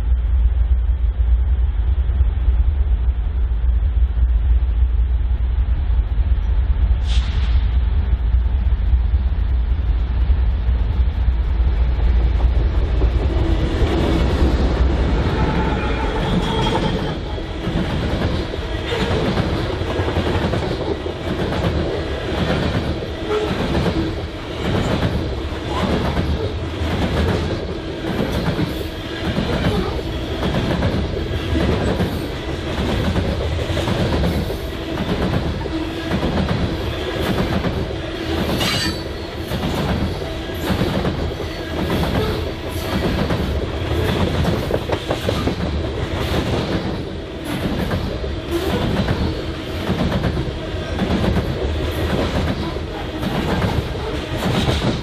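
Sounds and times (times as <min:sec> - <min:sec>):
diesel locomotive engine: 0:00.0 - 0:55.0
train rumble: 0:00.0 - 0:55.0
train wheels clacking: 0:12.4 - 0:55.0.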